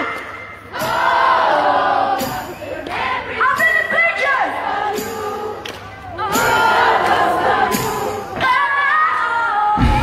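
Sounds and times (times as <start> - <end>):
crowd singing: 0.0 - 10.0
bass and drums: 9.8 - 10.0.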